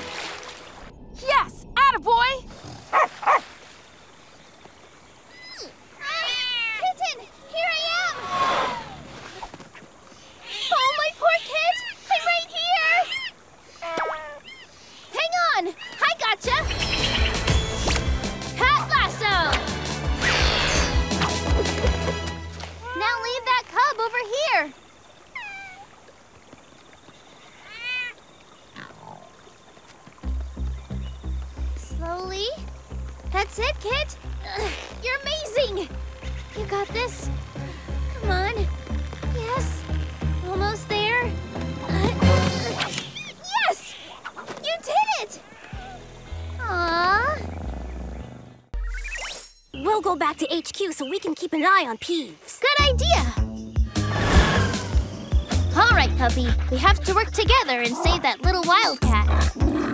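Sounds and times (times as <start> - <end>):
swishing sound effect: 54.0 - 55.1.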